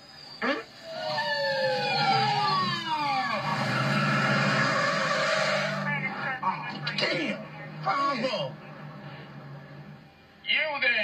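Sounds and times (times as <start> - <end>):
police siren winding down: 0.0 - 10.1
car noise with engine hum: 2.9 - 11.0.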